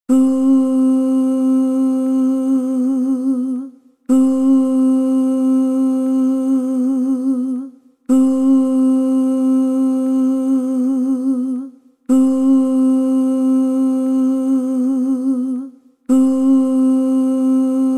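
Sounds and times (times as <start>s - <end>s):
sampled vocal ooh: 0.1s - 17.9s.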